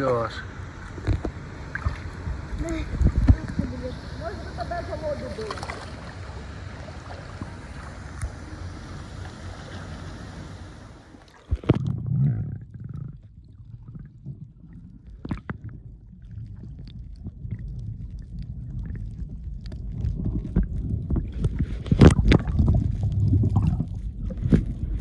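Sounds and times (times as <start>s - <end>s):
water and air hiss: 0.0s - 11.8s
muffled underwater rumble: 0.0s - 25.0s.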